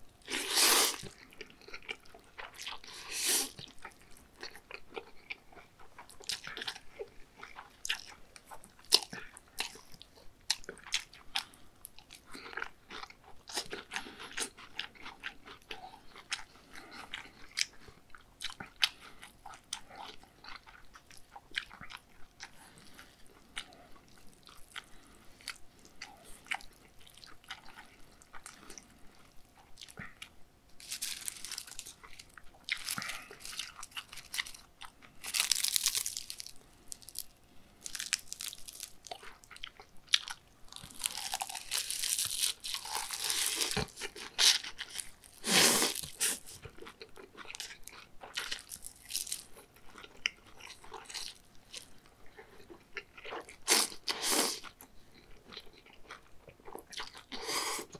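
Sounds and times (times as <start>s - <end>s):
dried seaweed crinkling: 30.8s - 34.6s, 35.2s - 39.2s, 40.7s - 46.6s, 48.5s - 49.6s
crisp crunches of biting: 30.8s - 51.9s.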